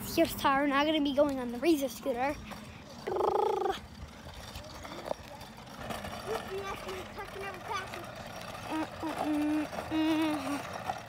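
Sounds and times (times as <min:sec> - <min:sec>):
outdoor background noise: 0:00.0 - 0:11.0
child making short broken sounds: 0:03.0 - 0:03.8.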